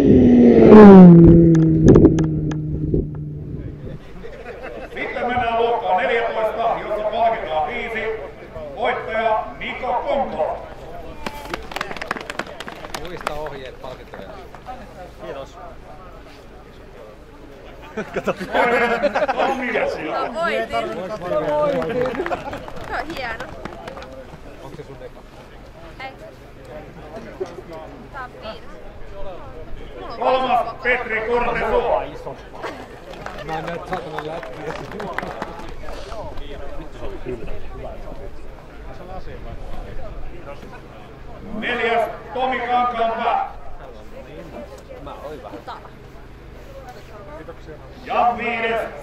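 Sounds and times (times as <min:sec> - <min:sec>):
people talking: 0:03.4 - 0:49.0
crowd clapping: 0:11.2 - 0:14.6, 0:20.6 - 0:24.5, 0:32.6 - 0:36.5.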